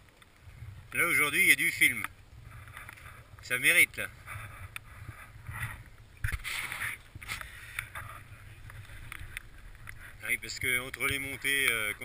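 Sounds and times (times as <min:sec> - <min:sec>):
bikes rattling on stony trail: 0:00.0 - 0:12.0
short scrape: 0:04.2 - 0:07.7.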